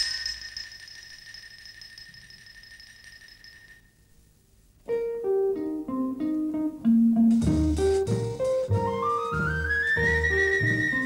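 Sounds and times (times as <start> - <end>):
ringing metallic chime note: 0.0 - 4.0.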